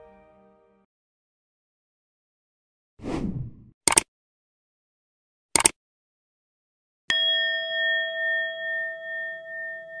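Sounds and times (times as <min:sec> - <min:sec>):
bell chime ringing: 0:07.1 - 0:10.0.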